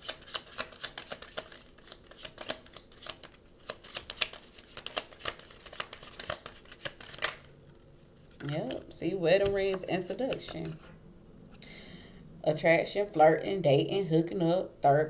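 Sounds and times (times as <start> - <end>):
cards being shuffled: 0.0 - 7.5, 8.2 - 10.9.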